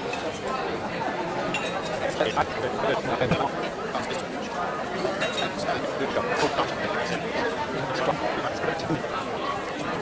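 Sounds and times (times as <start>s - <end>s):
diners chattering: 0.0s - 10.0s.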